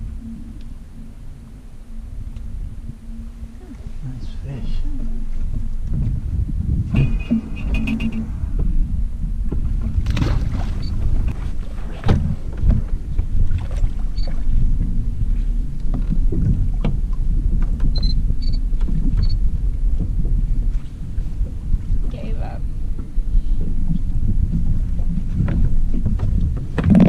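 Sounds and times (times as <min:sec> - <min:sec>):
water lapping at hull: 0:00.0 - 0:27.0
wind rumbling on microphone: 0:00.0 - 0:27.0.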